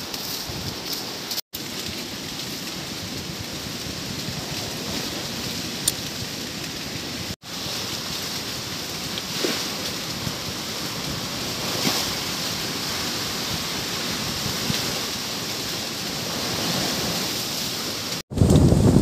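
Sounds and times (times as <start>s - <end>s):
rushing wind: 0.0s - 19.0s
wind buffeting microphone: 0.4s - 0.9s, 1.8s - 19.0s.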